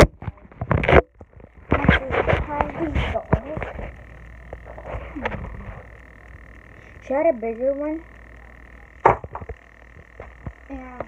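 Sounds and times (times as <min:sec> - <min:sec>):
faint high whine: 0:00.0 - 0:11.0
hum: 0:00.0 - 0:11.0.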